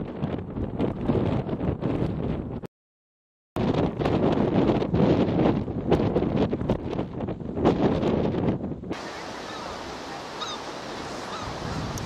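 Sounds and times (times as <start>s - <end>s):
wind buffeting microphone: 0.0s - 2.7s, 3.6s - 12.0s
distant surf hiss: 9.0s - 12.0s.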